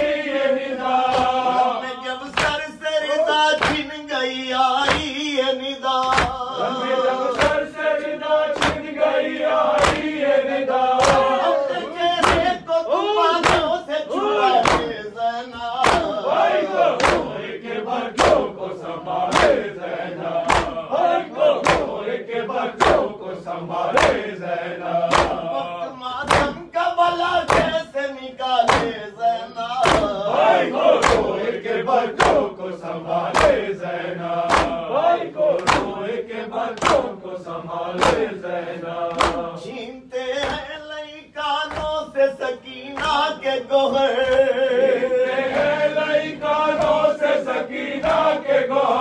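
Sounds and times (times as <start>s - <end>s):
men chanting in unison: 0.0s - 49.0s
reciter at microphone: 0.0s - 49.0s.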